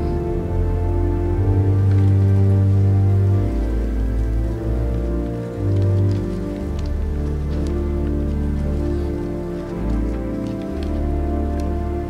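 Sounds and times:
pipe organ sustained chords: 0.0 - 12.0.

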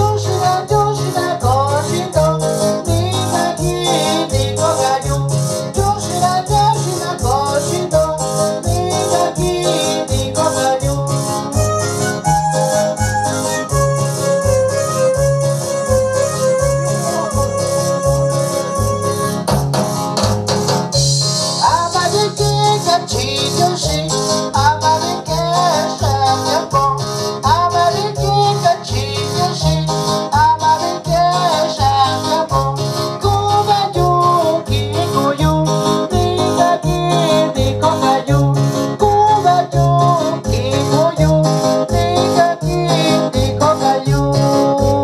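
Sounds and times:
wavering lead melody: 0.0 - 20.3
keyboard bass and rhythm: 0.0 - 45.0
shaker-like percussion: 1.9 - 24.1.

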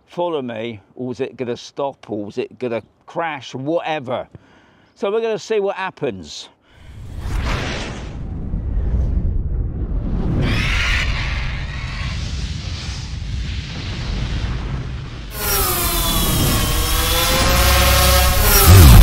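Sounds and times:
deep rumble with booms: 7.9 - 15.3, 18.4 - 19.0
whooshing sweeps: 16.6 - 19.0.

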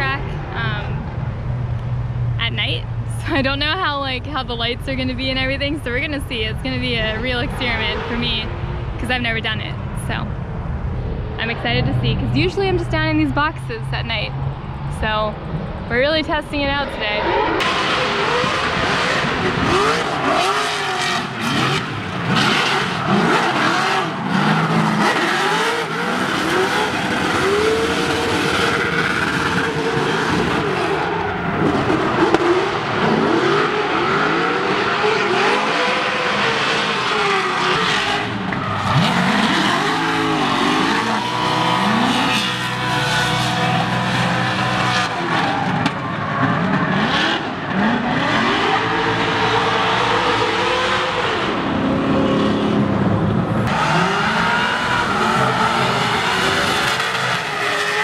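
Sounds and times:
car engines revving: 0.0 - 58.0
tyres sliding on asphalt: 17.2 - 58.0.

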